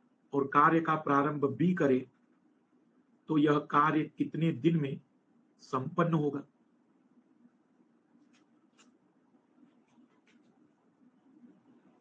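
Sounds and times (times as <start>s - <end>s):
faint low hum: 0.0s - 12.0s
faint scratchy sounds: 3.2s - 12.0s.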